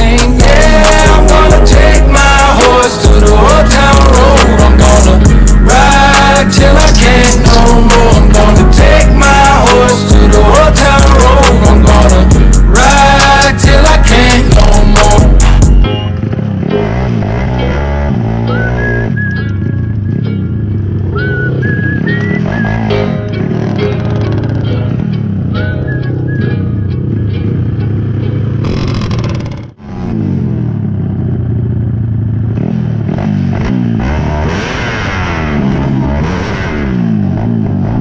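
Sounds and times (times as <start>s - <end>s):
background music: 0.0s - 21.6s, 22.3s - 28.5s
motorcycle engines revving: 0.0s - 38.0s.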